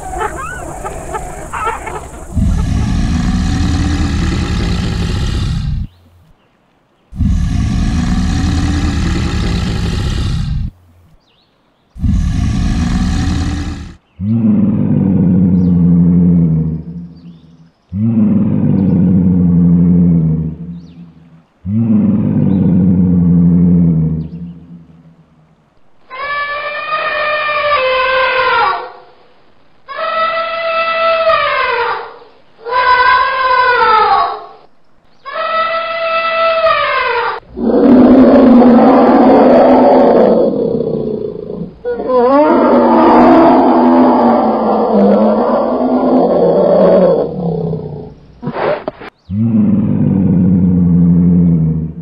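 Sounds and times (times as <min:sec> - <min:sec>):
big cat roaring: 0:00.0 - 0:06.0, 0:07.1 - 0:10.8, 0:12.0 - 0:16.9, 0:17.9 - 0:20.8, 0:21.6 - 0:24.4, 0:37.4 - 0:48.1, 0:49.3 - 0:52.0
tiger growling roar: 0:00.0 - 0:06.0, 0:07.1 - 0:10.8, 0:12.0 - 0:16.9, 0:21.6 - 0:24.4, 0:37.4 - 0:48.5, 0:49.3 - 0:52.0.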